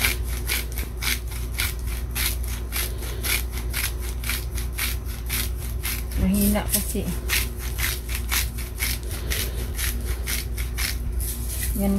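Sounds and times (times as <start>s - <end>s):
salt grinder grinding: 0.0s - 11.9s.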